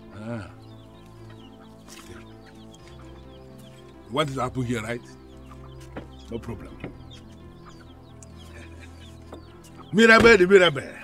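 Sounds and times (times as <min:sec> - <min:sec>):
chickens clucking and chirping: 0:00.0 - 0:11.0
quiet background music: 0:00.0 - 0:11.0.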